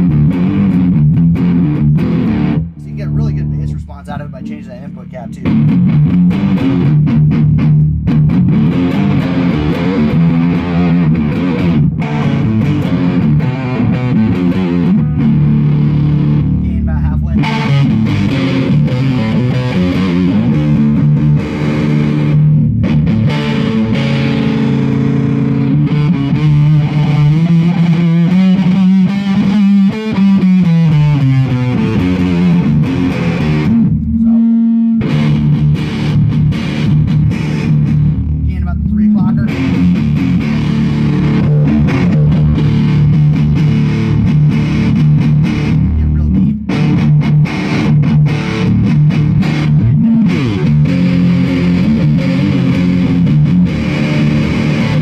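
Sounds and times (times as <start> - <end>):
distorted fuzz electric guitar: 0.0 - 55.0.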